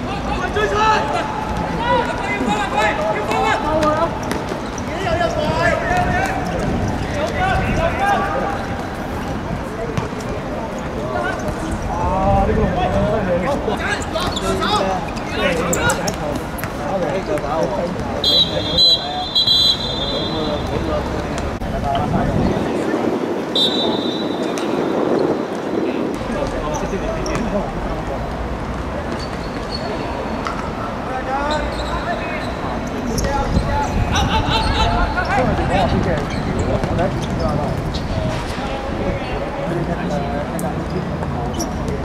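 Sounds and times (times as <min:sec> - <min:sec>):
players shouting: 0:00.0 - 0:17.2
referee's whistle blasts: 0:18.2 - 0:20.7, 0:23.5 - 0:24.6.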